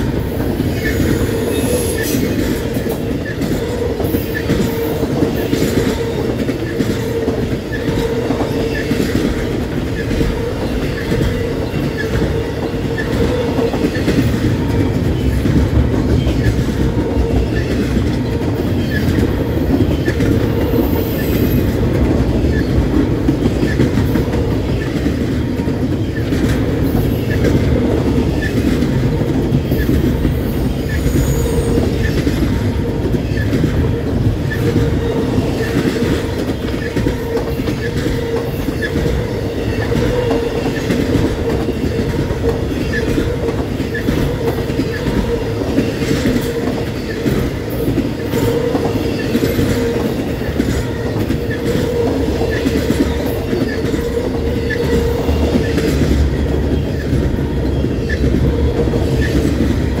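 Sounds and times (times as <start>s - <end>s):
freight train rolling past: 0.0s - 60.0s
wheels clacking over rail joints: 0.0s - 60.0s.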